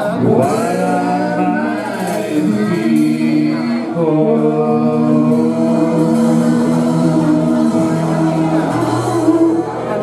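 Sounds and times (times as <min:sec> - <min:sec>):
drums: 0:00.0 - 0:10.0
electric guitar: 0:00.0 - 0:10.0
lap steel guitar: 0:00.0 - 0:10.0
man singing: 0:00.0 - 0:10.0.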